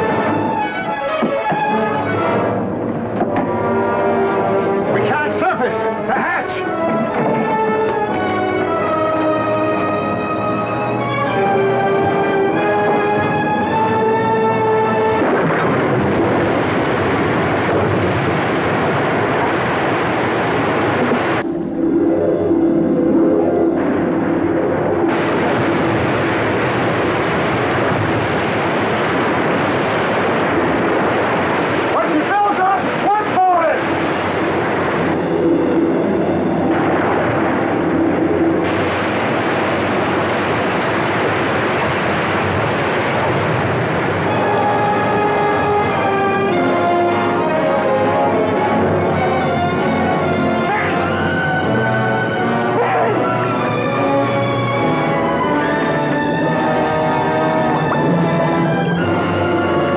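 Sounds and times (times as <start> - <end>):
orchestral music: 0.0 - 59.9
rushing churning water: 0.0 - 59.9.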